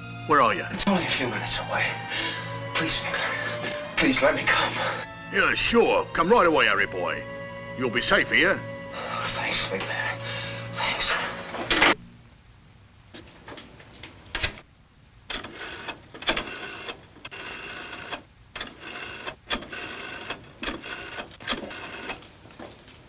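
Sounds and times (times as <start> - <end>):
old telephone ringing: 15.3 - 22.2.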